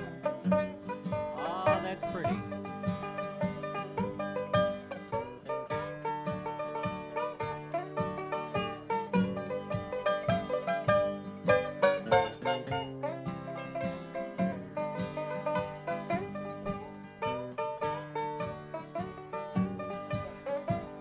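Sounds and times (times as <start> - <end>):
acoustic guitar rhythm: 0.0 - 21.0
banjo fast rolling picking: 0.0 - 21.0.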